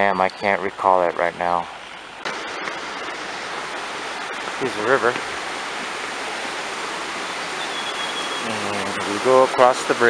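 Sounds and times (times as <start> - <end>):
river rushing over rocks: 2.2 - 10.0.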